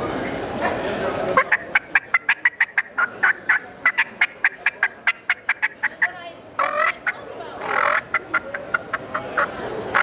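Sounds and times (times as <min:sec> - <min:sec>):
turkey call hen notes: 0:01.4 - 0:10.0.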